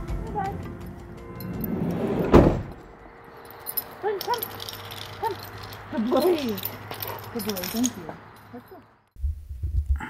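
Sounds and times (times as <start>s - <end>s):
sudden thump: 1.6s - 2.9s.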